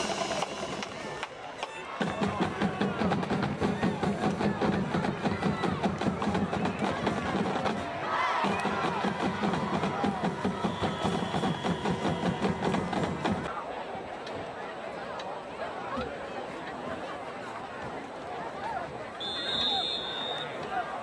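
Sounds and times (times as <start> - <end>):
crowd voices: 0.0 - 21.0
marching band drums: 2.0 - 13.5.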